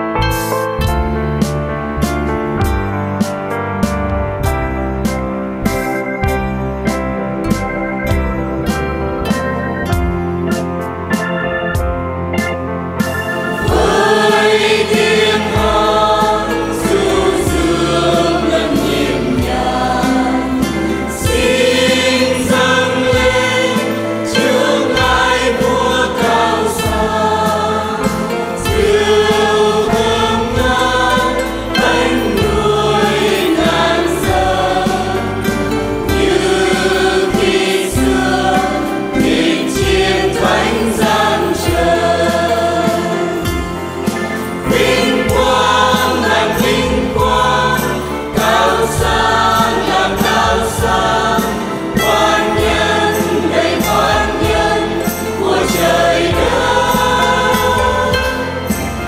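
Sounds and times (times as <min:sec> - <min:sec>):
keyboard accompaniment: 0:00.0 - 0:59.0
mixed choir singing a hymn: 0:12.4 - 0:59.0.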